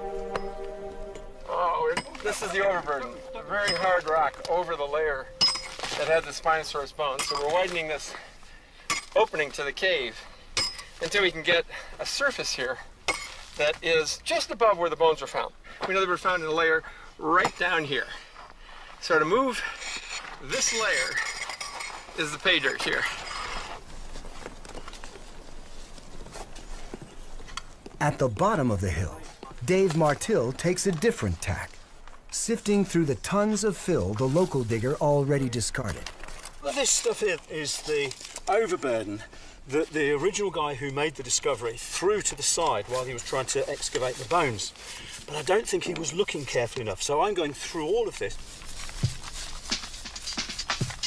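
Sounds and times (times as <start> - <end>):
rock rattling and scraping in sieve: 48.2 - 51.0.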